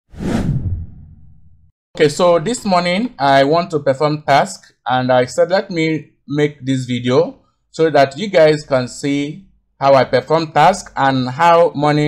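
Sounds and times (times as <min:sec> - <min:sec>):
whoosh with deep rumble: 0:00.1 - 0:01.7.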